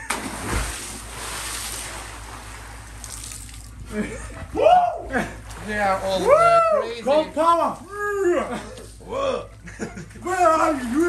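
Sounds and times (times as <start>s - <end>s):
pool water splashing: 0.0s - 8.3s.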